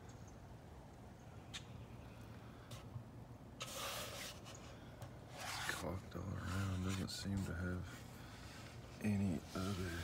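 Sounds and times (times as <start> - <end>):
hand rubbing wooden roof: 3.6 - 10.0.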